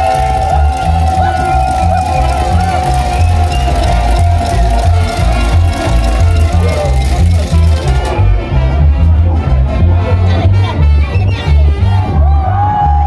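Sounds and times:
dance band playing loud music: 0.0s - 12.6s.

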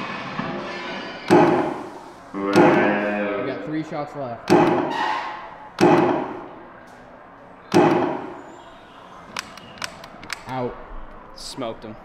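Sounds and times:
arcade gunshot sound effects: 1.3s - 1.9s, 2.6s - 3.0s, 4.5s - 5.0s, 5.8s - 6.6s, 7.7s - 8.5s.

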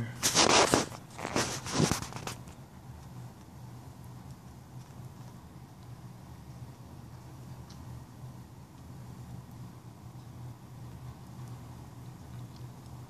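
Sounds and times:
steady low hum: 0.0s - 13.0s
rustling handling noise: 0.2s - 2.6s.

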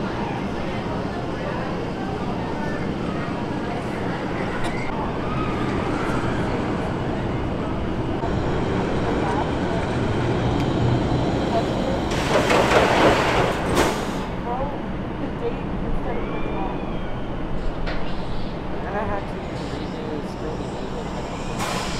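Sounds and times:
roller coaster brakes hissing: 10.3s - 14.4s, 16.2s - 21.9s.

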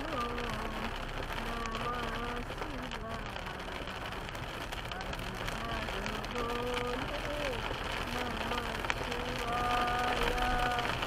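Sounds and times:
car driving on wet road: 0.0s - 11.0s
rain: 0.0s - 11.0s.

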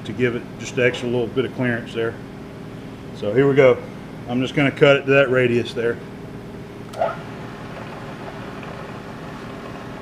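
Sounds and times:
milling machine humming: 6.7s - 10.0s.

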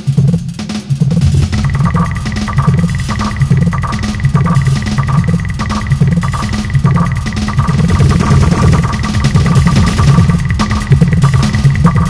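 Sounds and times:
clicky beat: 0.0s - 12.0s
pulsing synth bass: 1.2s - 12.0s.

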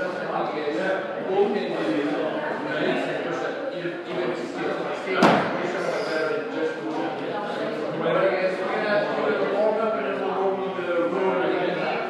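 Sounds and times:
voices talking: 0.0s - 12.0s
sharp slam: 5.2s - 5.7s.

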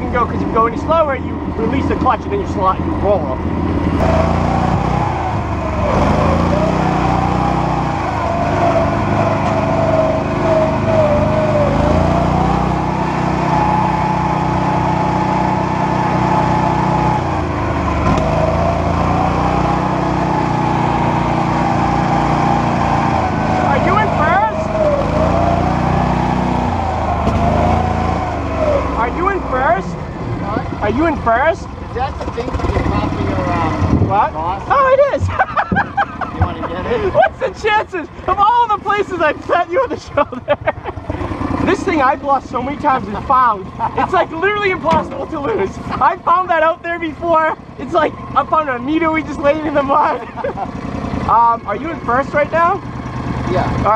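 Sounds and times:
atv engine driving: 0.0s - 53.9s.

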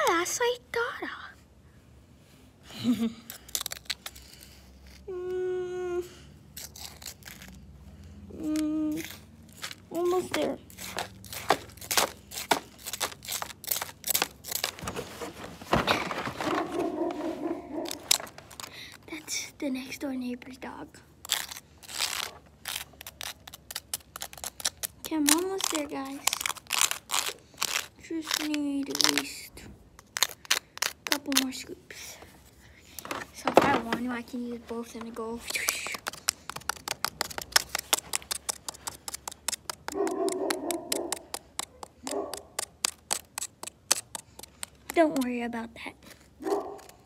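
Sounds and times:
plastic spoon scraping dirt: 8.9s - 15.1s.

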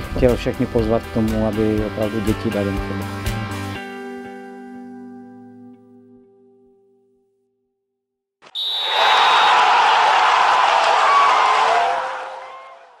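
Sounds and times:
crowd cheering: 8.5s - 13.0s.

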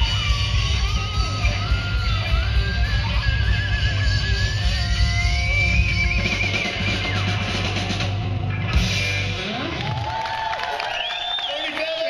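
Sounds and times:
live rock band playing: 0.0s - 10.9s.

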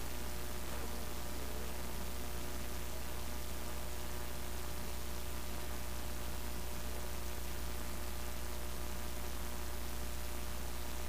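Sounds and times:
constant hiss: 0.0s - 11.0s
low electrical hum: 0.0s - 11.0s.

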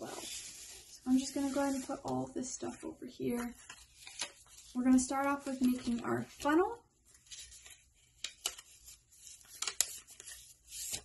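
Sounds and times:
paper being folded: 3.3s - 11.0s.

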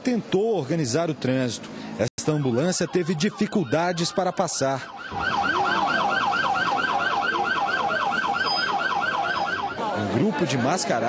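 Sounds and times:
ambulance siren yelping: 2.2s - 10.0s.

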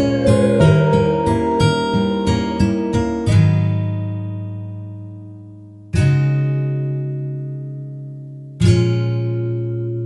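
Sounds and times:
plucked guitar chord ringing: 0.0s - 4.2s.

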